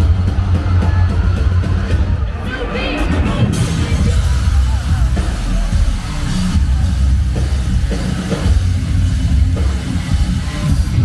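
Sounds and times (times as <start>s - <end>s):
bass guitar: 0.0s - 11.0s
heavy drum kit: 0.0s - 11.0s
live rock band playing loud: 0.0s - 11.0s.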